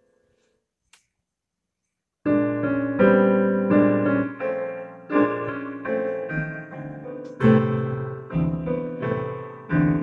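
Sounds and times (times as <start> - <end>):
piano chord: 2.3 - 10.0.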